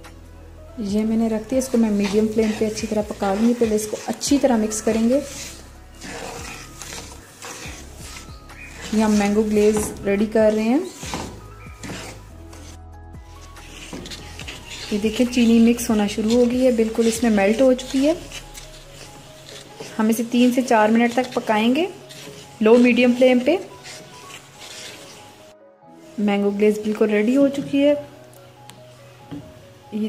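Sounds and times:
soft background music: 0.0s - 30.0s
glaze sizzling: 0.9s - 27.4s
wooden spoon stirring in pan: 1.1s - 27.8s.

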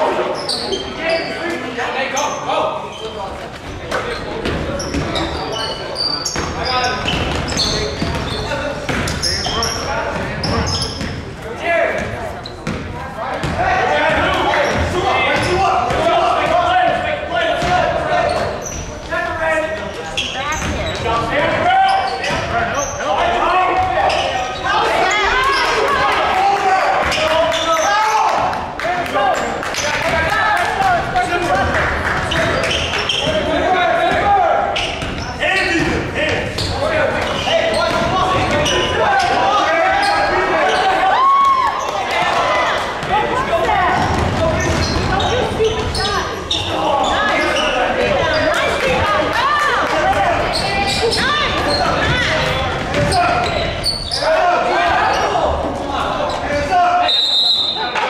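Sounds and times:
sneakers squeaking: 0.0s - 26.0s, 29.3s - 58.0s
people calling out: 36.6s - 58.0s
basketball bouncing on wooden floor: 43.9s - 46.0s, 51.1s - 53.2s.

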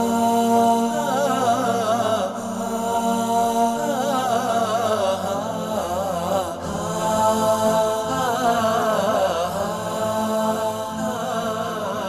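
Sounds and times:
unaccompanied chanted singing: 0.0s - 12.0s.

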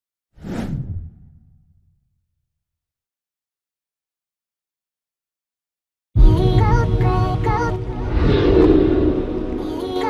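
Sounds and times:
deep rumble: 6.2s - 10.0s
whoosh: 7.3s - 10.0s.

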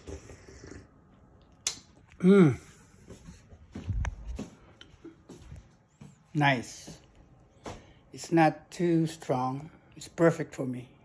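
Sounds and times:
soft slurp of coffee: 0.0s - 1.0s.

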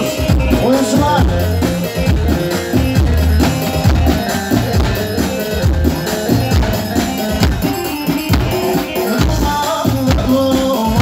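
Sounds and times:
bass drum beating: 0.0s - 11.0s.

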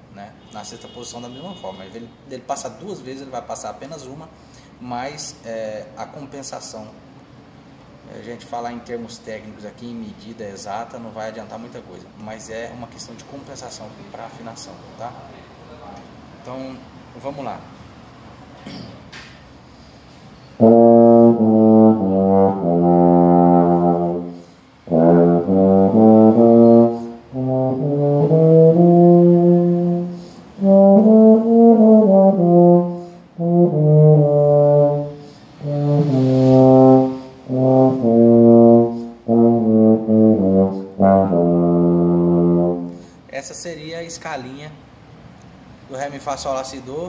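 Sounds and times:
euphonium playing scale: 20.6s - 43.0s.

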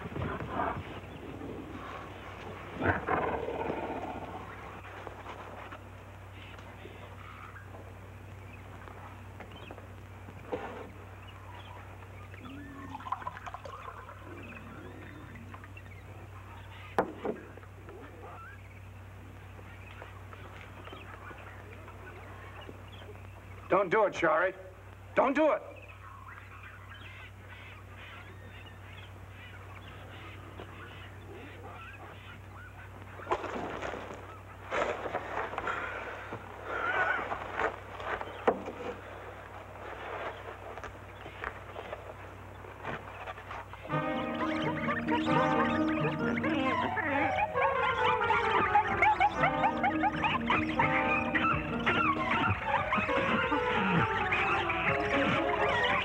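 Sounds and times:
animal-like calls: 0.0s - 5.4s, 10.5s - 23.3s, 25.8s - 39.1s, 40.0s - 56.0s
steady low hum: 0.0s - 56.0s
orchestral score music: 43.9s - 56.0s.

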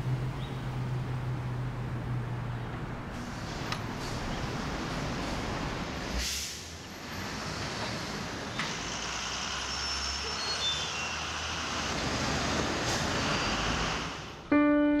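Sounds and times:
passing vehicles hum: 0.0s - 14.5s.

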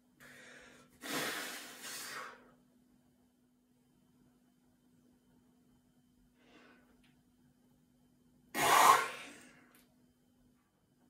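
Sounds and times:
man's sharp burst of breath: 8.6s - 9.5s.

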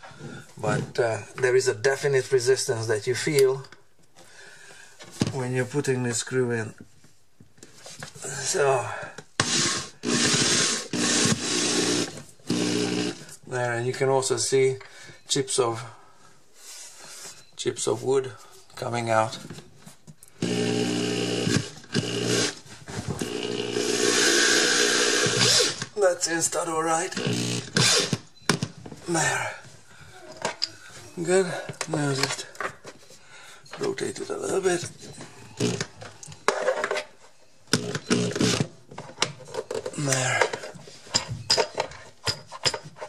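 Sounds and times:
power drill driving a screw: 9.4s - 13.2s, 20.4s - 22.6s, 23.2s - 25.9s, 27.2s - 28.2s, 35.6s - 35.9s, 37.8s - 38.7s.

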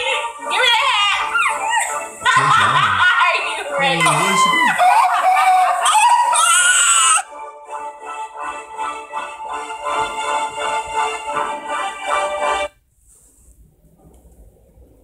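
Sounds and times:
background music: 0.0s - 12.8s
people yelling and laughing: 0.6s - 7.3s.

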